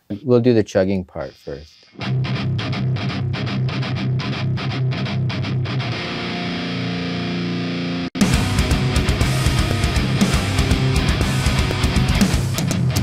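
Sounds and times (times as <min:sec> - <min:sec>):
distorted electric guitar: 0:01.7 - 0:13.0.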